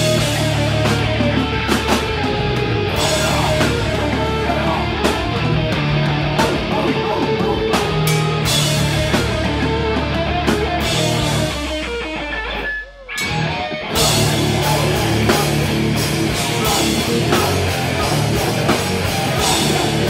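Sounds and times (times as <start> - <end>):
death metal band playing: 0.0 - 20.0.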